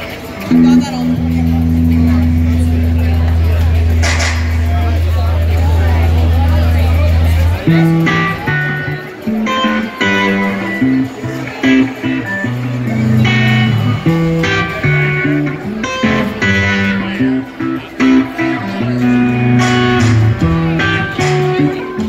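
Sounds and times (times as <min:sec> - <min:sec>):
electric guitar riff: 0:00.0 - 0:22.0
drum kit: 0:00.5 - 0:09.5, 0:19.5 - 0:22.0.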